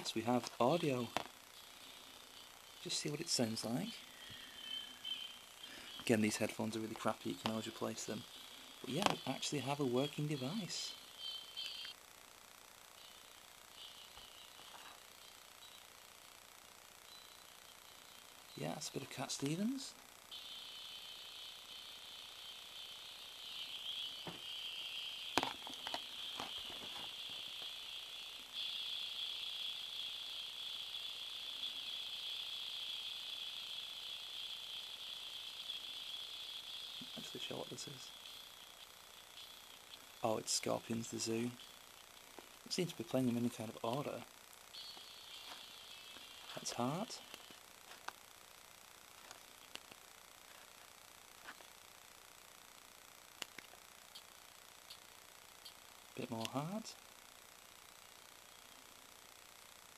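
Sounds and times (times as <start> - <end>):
tinny music from earbuds: 0.0 - 12.1, 12.7 - 48.6.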